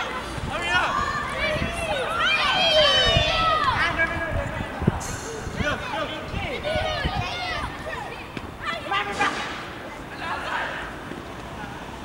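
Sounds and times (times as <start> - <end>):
children shouting: 0.0 - 4.2, 5.2 - 9.3.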